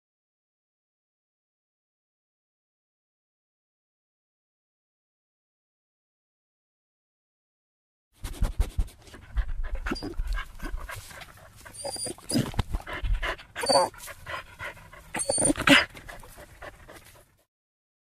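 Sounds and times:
dog panting: 0:08.3 - 0:17.5
dog whimpering: 0:09.3 - 0:11.0, 0:11.6 - 0:17.0.

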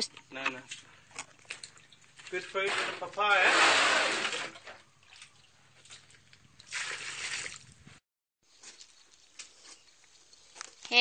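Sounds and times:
muddy water sloshing and splashing: 0:00.6 - 0:08.0.

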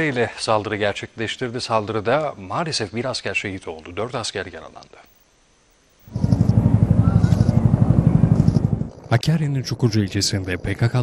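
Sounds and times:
helicopter rotor beating: 0:06.1 - 0:11.0.

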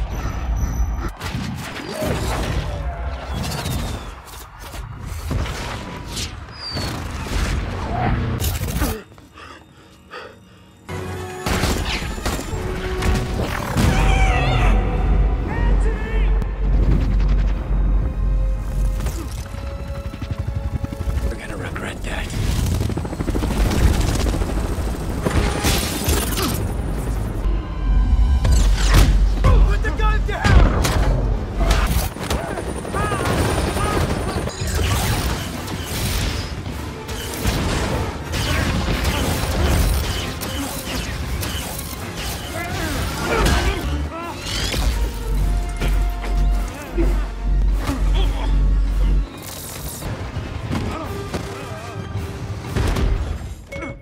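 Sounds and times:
music: 0:07.9 - 0:32.0, 0:32.8 - 0:54.0.

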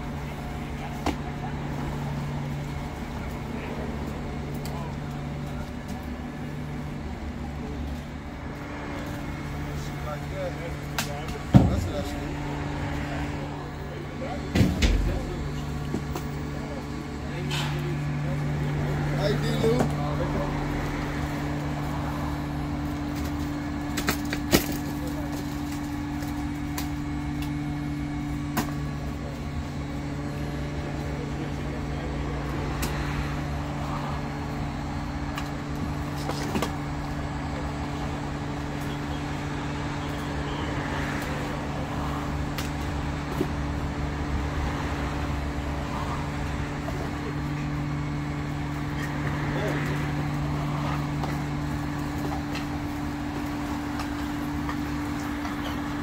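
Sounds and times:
vehicle engine idling: 0:00.0 - 0:56.0.

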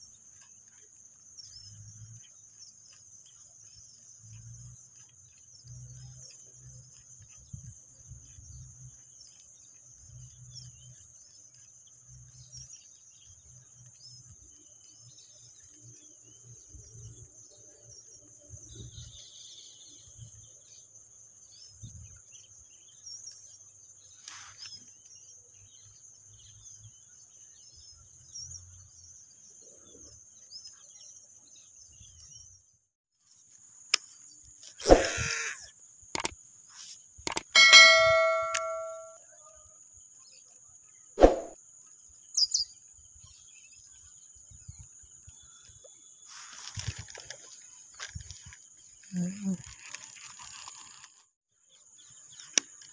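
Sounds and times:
high insect drone: 0:34.7 - 0:36.3
metallic ding: 0:37.3 - 0:39.2.

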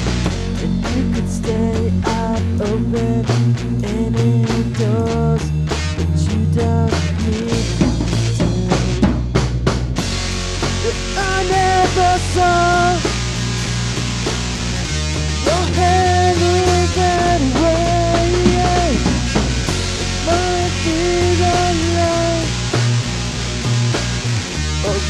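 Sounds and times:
rock band playing: 0:00.0 - 0:25.0.

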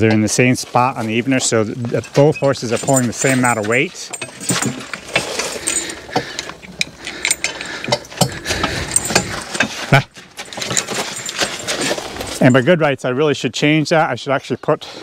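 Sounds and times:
metal hitch hardware clinking: 0:00.0 - 0:12.8.

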